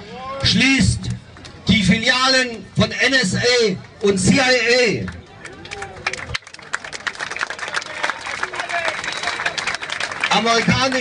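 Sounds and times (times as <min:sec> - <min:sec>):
crowd applause: 0:05.1 - 0:11.0.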